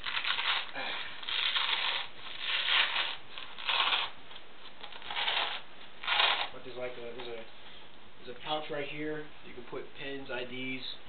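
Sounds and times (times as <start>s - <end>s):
velcro ripping apart: 0.0s - 6.6s.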